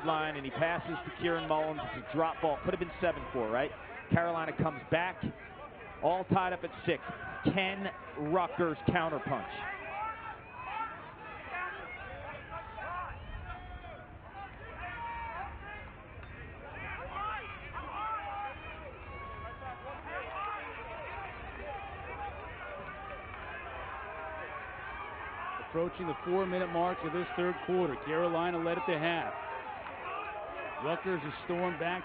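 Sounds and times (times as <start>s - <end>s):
outdoor stadium background: 0.0s - 32.0s
players and coaches shouting: 0.0s - 32.0s.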